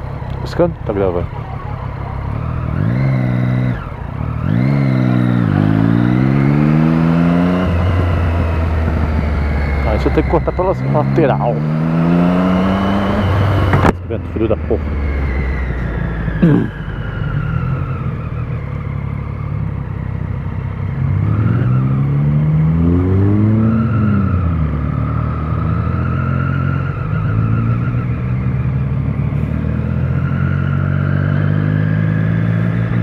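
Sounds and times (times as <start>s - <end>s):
low wind rumble: 0.0s - 30.0s
motorcycle engine revving: 0.0s - 33.0s.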